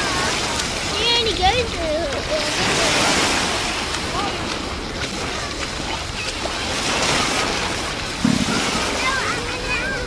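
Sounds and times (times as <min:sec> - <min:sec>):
small waves washing on beach: 0:00.0 - 0:10.0.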